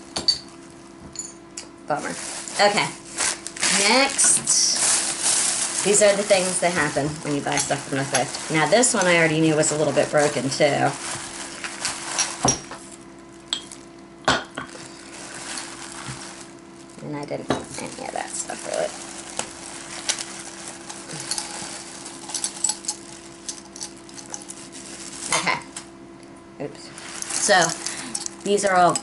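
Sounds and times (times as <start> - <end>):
plastic bag rustling: 1.9 - 14.1, 14.7 - 25.9, 26.8 - 29.0
small glass pieces clinking: 20.8 - 24.8, 27.2 - 29.0.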